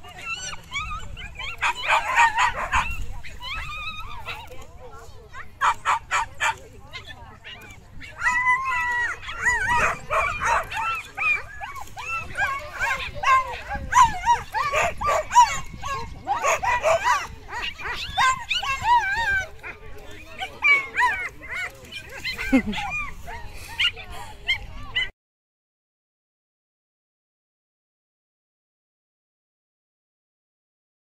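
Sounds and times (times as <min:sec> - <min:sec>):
dogs barking and yipping: 0:00.0 - 0:25.1.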